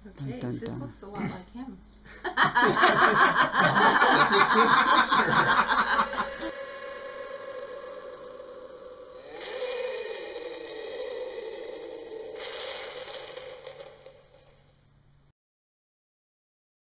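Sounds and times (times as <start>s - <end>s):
hissing swells: 3.8s - 14.8s
eerie tone sliding down in pitch: 4.1s - 14.7s.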